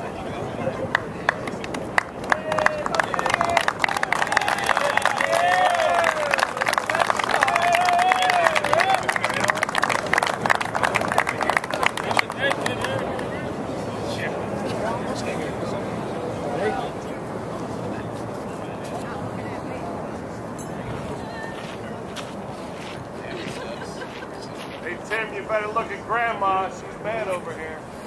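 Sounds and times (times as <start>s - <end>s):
crowd applauding: 0.8s - 13.4s
voices cheering: 2.0s - 13.5s.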